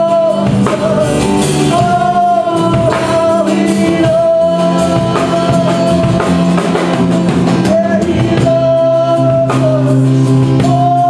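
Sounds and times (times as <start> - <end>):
drum kit: 0.0 - 11.0
guitar: 0.0 - 11.0.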